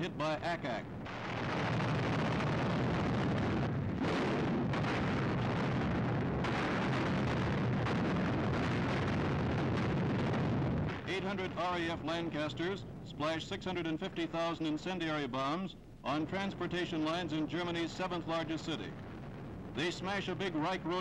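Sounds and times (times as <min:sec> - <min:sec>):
roar of explosions: 0:01.0 - 0:11.6.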